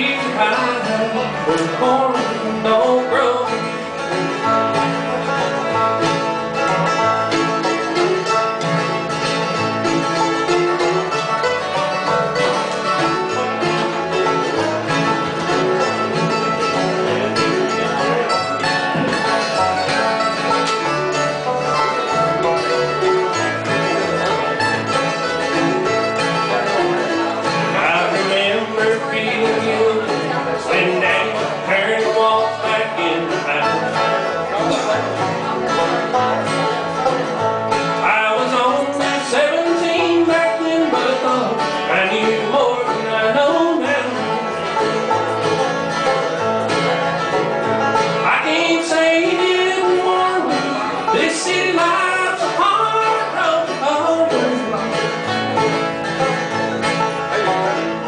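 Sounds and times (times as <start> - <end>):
bluegrass band playing: 0.0 - 58.0.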